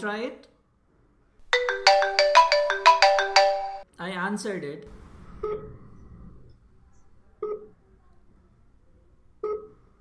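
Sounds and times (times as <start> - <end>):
mobile phone ringtone: 1.6 - 3.8.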